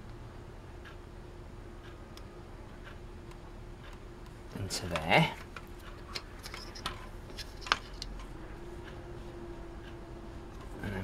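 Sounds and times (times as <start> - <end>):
faint steady hum: 0.0 - 11.0
light clicks and taps: 1.8 - 9.0.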